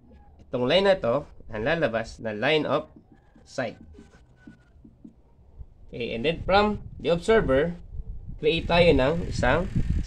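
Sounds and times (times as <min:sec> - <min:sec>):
marker writing on whiteboard: 0:01.5 - 0:05.4.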